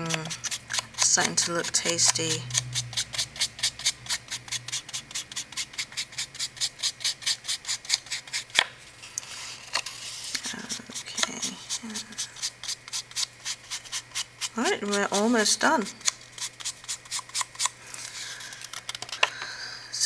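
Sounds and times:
sponge dabbing on paper: 0.0 - 8.6, 10.0 - 17.7
short rub: 0.0 - 18.4.

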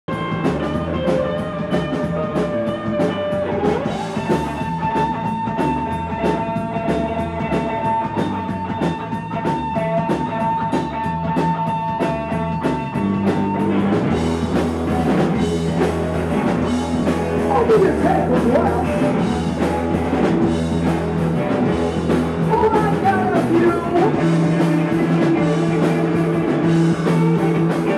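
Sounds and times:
electric guitar: 0.0 - 27.9
fast drum beat: 0.1 - 27.9.

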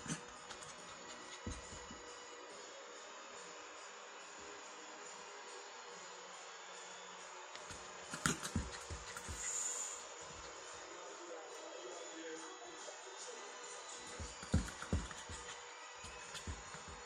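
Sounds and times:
dog playing on carpet: 8.2 - 9.8.

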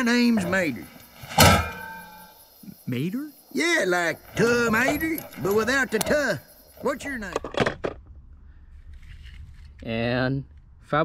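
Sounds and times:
loud metallic clunk: 1.3 - 2.3.

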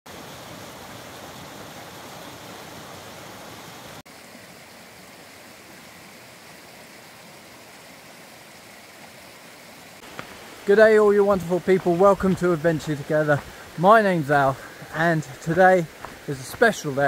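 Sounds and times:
stream rushing over rocks: 0.1 - 17.0.

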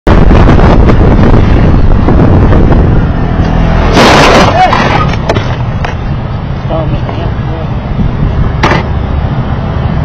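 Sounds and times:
wind and road noise: 0.0 - 10.0
car collision crash: 3.8 - 5.6.

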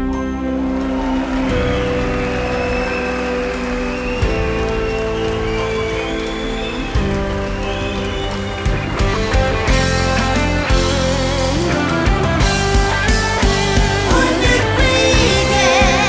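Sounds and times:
electric guitar and bass chords: 0.0 - 16.0.

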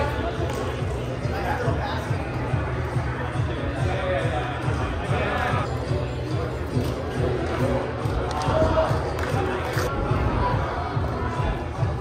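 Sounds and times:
crowd voices echoing in hall: 0.0 - 12.0
music: 0.0 - 12.0.

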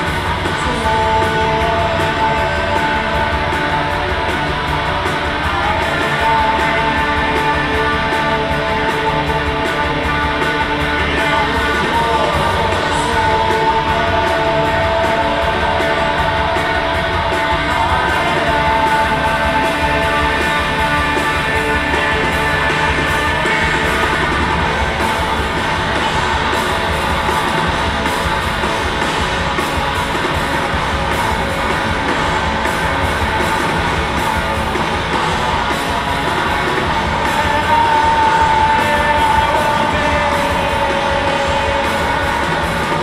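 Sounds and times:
live rock band playing: 0.0 - 43.0
shouted vocals: 30.3 - 43.0.

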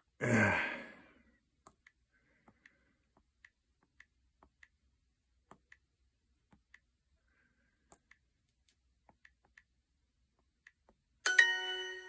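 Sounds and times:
person sighing: 0.2 - 1.4.

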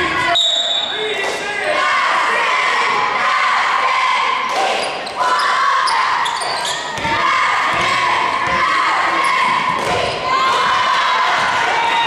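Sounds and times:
people calling out in a gym: 0.0 - 12.0.

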